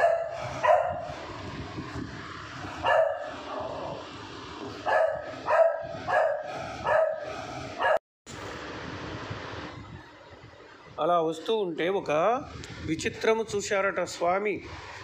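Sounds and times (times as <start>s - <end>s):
dog barking: 0.0s - 1.1s, 2.8s - 3.7s, 4.8s - 8.0s.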